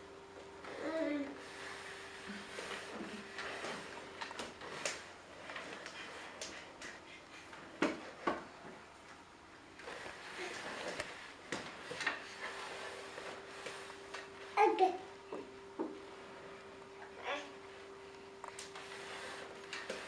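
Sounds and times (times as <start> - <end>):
chair legs scraping on floor: 0.6 - 6.6, 9.8 - 14.6, 18.4 - 20.0.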